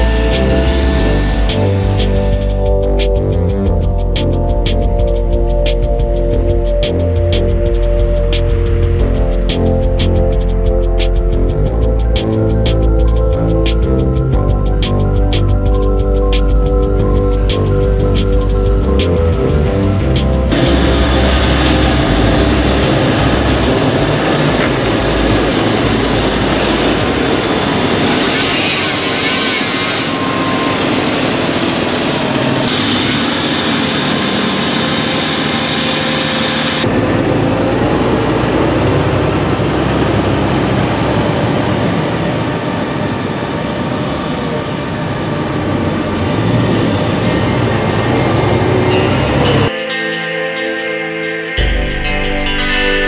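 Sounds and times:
tractor diesel engine under load: 0:17.0 - 0:49.7
slurry tanker machinery noise: 0:20.0 - 0:49.7.

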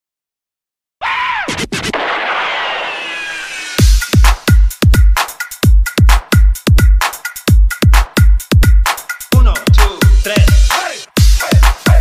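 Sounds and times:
record scratch effect: 0:01.4 - 0:03.8
electronic dance music: 0:02.6 - 0:12.0.

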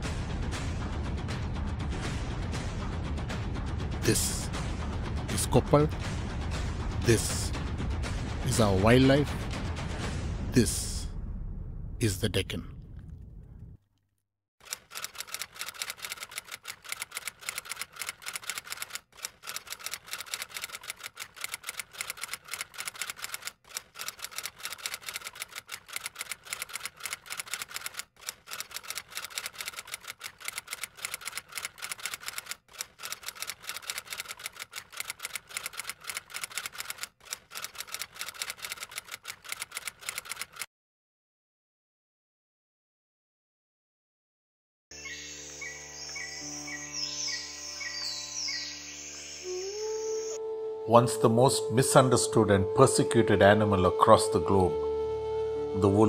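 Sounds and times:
typewriter keys clacking: 0:14.7 - 0:40.7.

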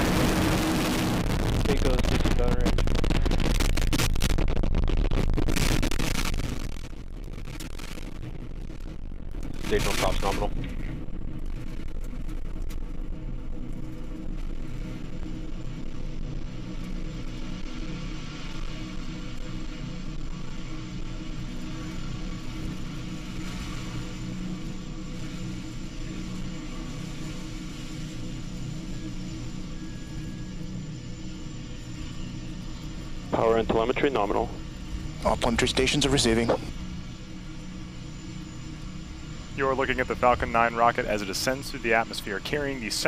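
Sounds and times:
rocket engines rumbling: 0:00.0 - 0:43.0.

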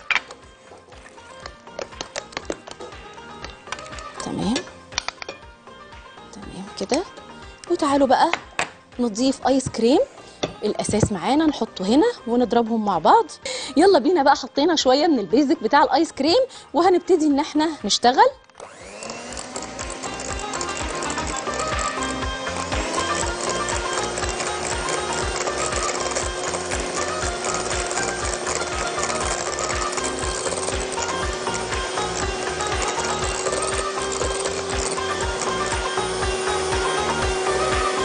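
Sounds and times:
background music with steady beat: 0:00.0 - 0:38.0
electric hand mixer running: 0:18.6 - 0:38.0.

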